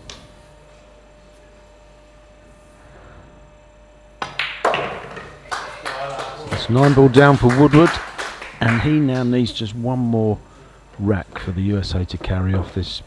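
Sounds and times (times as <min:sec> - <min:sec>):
faint steady hum: 0:00.0 - 0:13.0
pool balls knocking: 0:04.2 - 0:05.4
audience applause: 0:05.3 - 0:09.5.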